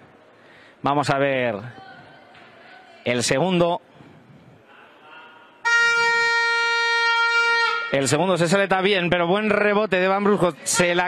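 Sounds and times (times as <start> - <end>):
high-pitched horn blast: 5.6 - 8.5.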